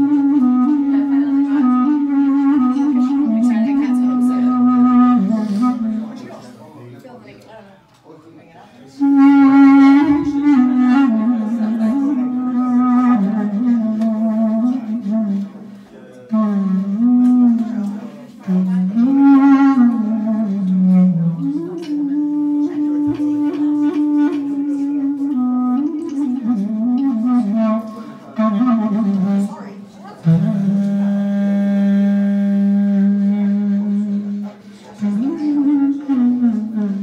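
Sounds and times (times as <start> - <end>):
clarinet playing slow melody: 0.0 - 6.2, 9.0 - 15.7, 16.3 - 37.0.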